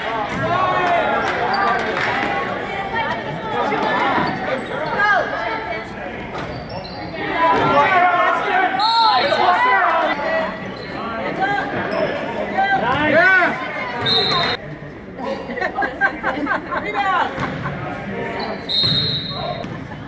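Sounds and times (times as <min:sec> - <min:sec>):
people calling out in a hall: 0:06.9 - 0:14.6.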